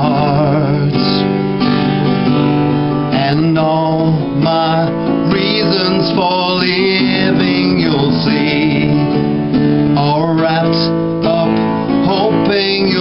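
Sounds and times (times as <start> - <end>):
man singing country song: 0.0 - 13.0
strummed acoustic guitar: 0.0 - 13.0.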